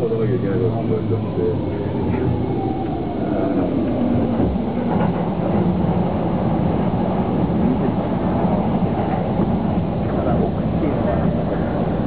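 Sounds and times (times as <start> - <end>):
train wheels and motors rumbling: 0.0 - 12.0.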